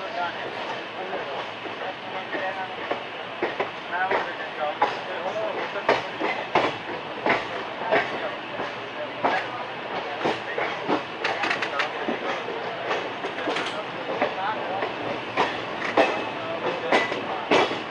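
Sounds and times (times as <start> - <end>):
train running noise: 0.0 - 17.9
wheels clacking over rail joints: 0.5 - 17.9.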